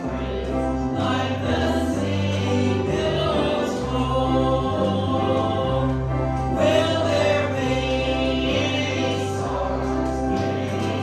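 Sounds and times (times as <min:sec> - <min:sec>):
gospel singing: 0:00.0 - 0:11.0
instrumental accompaniment: 0:00.0 - 0:11.0.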